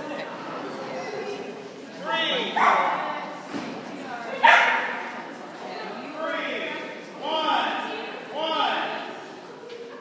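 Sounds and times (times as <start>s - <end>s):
dog barking in large hall: 2.4s - 3.3s, 4.3s - 5.2s.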